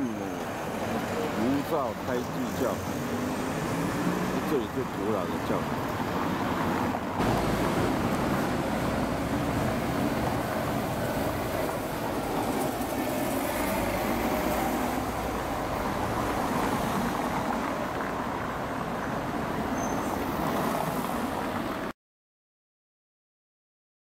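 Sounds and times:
cars driving past: 0.0s - 21.9s.

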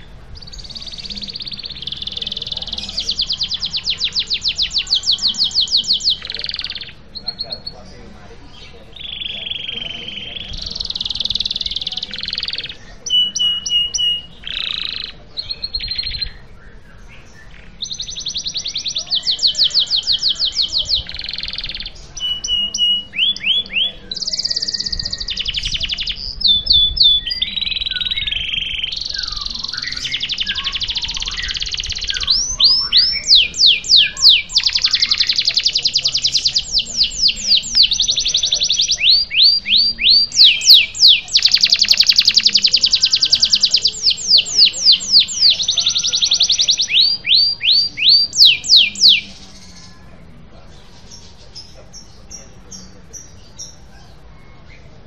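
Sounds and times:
canary singing trills: 0.0s - 55.0s.

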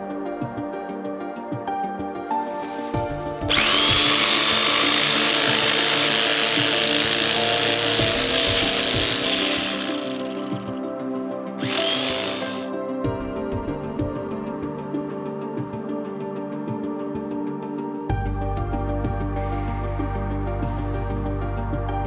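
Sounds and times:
electric carving knife cutting foam: 3.5s - 10.8s, 11.6s - 12.7s.

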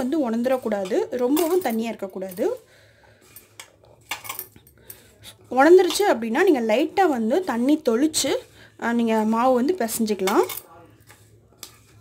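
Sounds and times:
rustling of kernels and flour: 5.4s - 12.0s.

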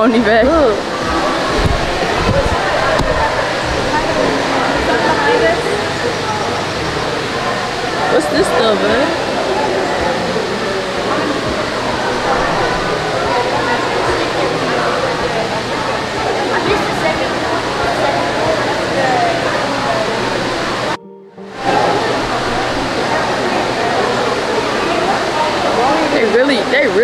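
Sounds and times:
indoor waterfall rushing: 0.0s - 21.0s, 21.7s - 27.0s
murmur of voices: 0.0s - 27.0s.

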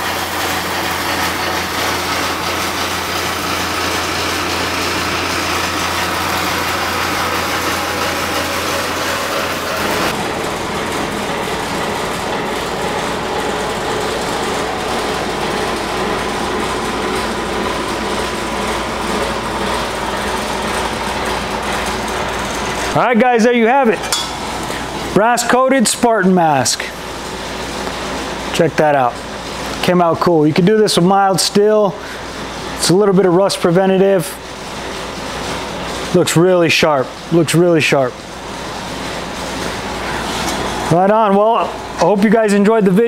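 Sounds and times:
machine running with low hum: 0.0s - 43.0s.

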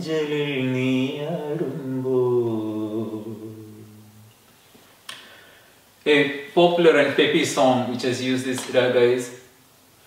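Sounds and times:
man singing unaccompanied: 0.0s - 4.3s.

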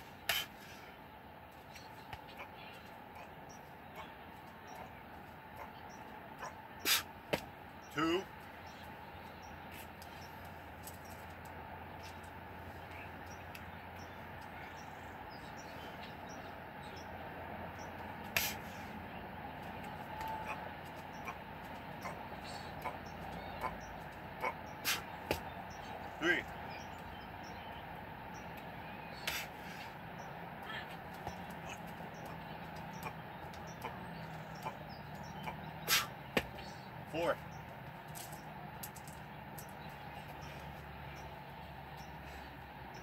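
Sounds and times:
outdoor background noise: 0.0s - 43.0s
hands and shoes tapping concrete: 36.3s - 36.7s.

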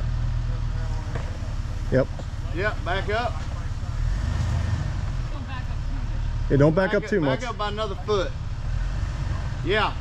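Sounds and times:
engine idling with low rumble: 0.0s - 10.0s.

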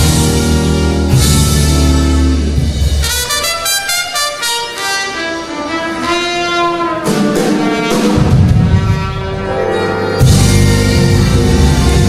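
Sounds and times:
horns holding sustained notes: 0.0s - 12.0s
jazz-funk band music: 0.0s - 12.0s.

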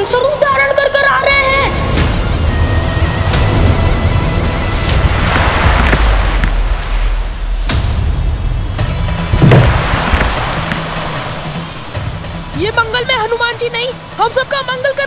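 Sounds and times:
dramatic background score: 0.0s - 15.0s
water rushing and crashing: 0.0s - 15.0s
sharp hit: 5.8s - 11.9s
deep boom: 6.1s - 10.7s.

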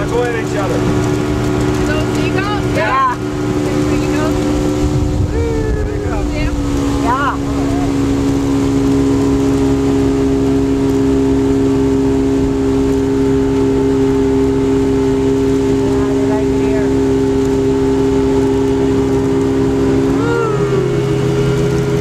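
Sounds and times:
speedboat engine running: 0.0s - 22.0s
wind and water hum: 0.0s - 22.0s.

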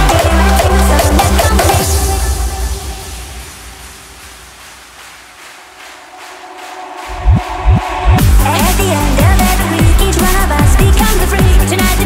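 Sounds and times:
low bass: 7.0s - 11.1s.

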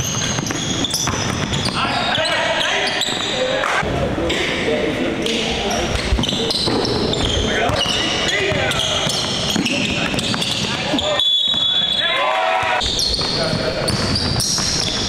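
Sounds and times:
sneakers squeaking: 0.0s - 4.6s, 5.2s - 15.0s
players' voices: 1.5s - 15.0s.

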